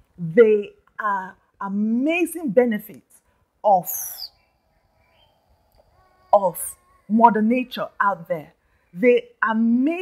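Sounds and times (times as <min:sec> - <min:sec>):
faint thin steady tones: 0:00.0 - 0:10.0
woman's voice: 0:00.2 - 0:04.4, 0:06.3 - 0:10.0.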